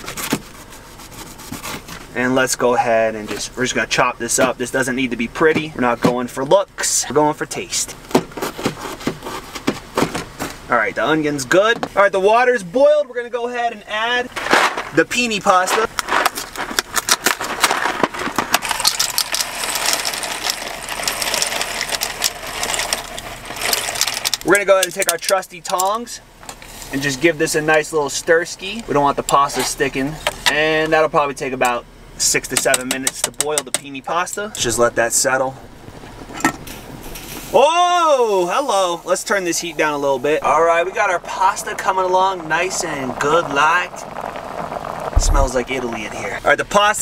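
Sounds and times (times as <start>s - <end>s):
dry pasta rattling clicks: 18.6s - 25.9s
boiling water hiss: 18.6s - 28.8s, 36.6s - 47.0s.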